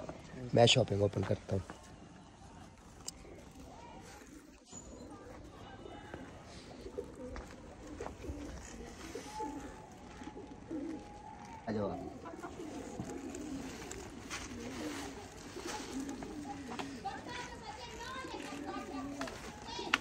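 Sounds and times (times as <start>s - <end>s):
faint children's voices: 1.6s - 20.0s
pigeons cooing: 3.1s - 20.0s.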